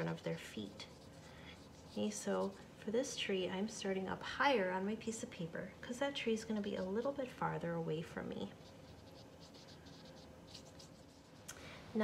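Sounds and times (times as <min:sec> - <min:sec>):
paintbrush swishing across paper: 0:00.0 - 0:02.8, 0:08.4 - 0:12.0.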